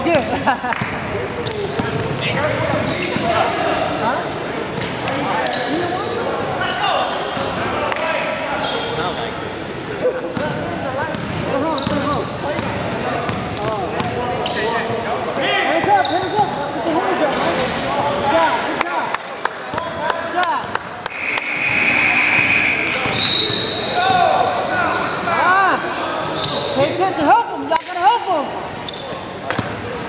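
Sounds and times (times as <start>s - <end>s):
sneakers squeaking: 0.0s - 18.2s, 21.0s - 25.6s, 26.2s - 27.3s, 28.7s - 30.0s
players calling out: 0.0s - 29.9s
basketball bouncing: 11.1s - 14.2s.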